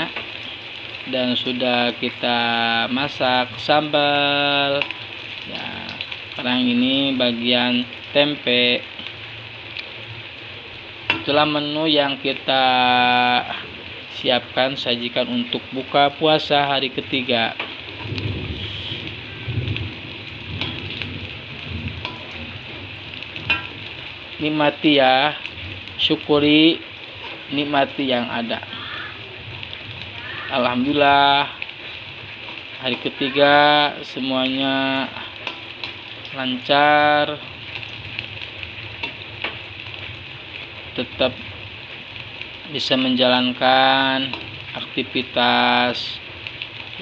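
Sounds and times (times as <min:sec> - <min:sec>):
food sizzling in hot oil: 0:00.0 - 0:47.0
metal spatula clicking on pan: 0:35.4 - 0:36.0.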